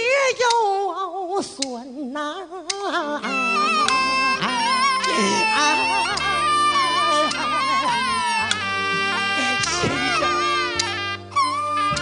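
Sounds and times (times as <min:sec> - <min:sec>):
man wailing in song: 0:03.2 - 0:12.0
stage band playing: 0:03.3 - 0:12.0.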